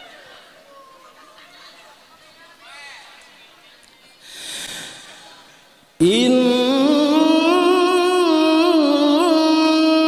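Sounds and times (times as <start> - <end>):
deep breath into microphone: 4.2 - 5.6.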